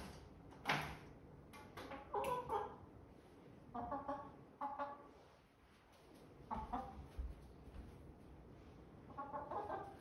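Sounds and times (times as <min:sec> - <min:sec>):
chickens clucking: 0:01.7 - 0:03.0, 0:03.6 - 0:05.2, 0:06.1 - 0:07.4, 0:09.0 - 0:10.0.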